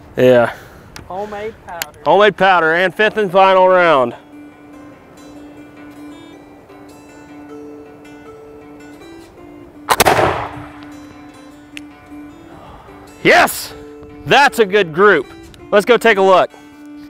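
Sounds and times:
background music: 2.4s - 17.0s
musket shot: 9.9s - 10.9s.

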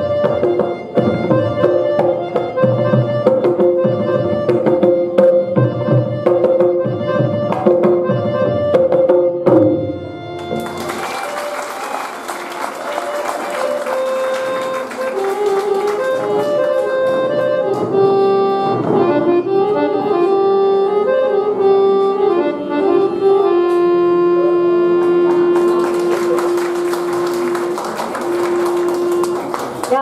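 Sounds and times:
tabla: 0.0s - 10.6s
harmonium melody: 0.0s - 30.0s.

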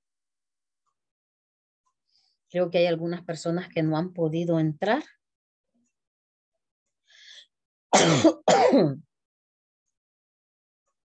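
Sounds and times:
short breath: 7.0s - 7.6s
person clearing throat: 8.0s - 9.1s.

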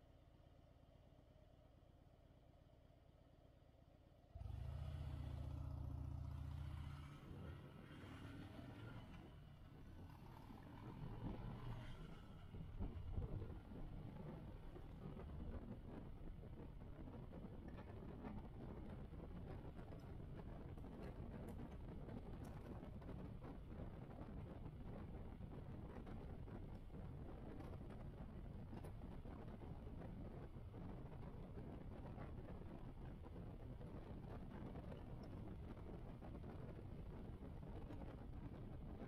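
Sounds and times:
motorcycle engine pulling away: 4.4s - 14.6s.

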